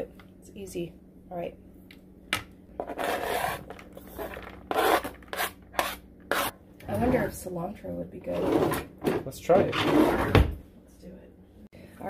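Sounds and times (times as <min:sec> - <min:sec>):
knife scraping plastic cutting board: 0:02.8 - 0:06.5.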